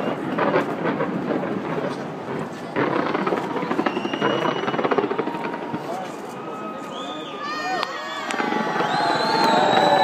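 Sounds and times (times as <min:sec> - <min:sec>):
fireworks bangs and crackles: 0:00.0 - 0:10.0
thin whistle tone: 0:06.6 - 0:08.2.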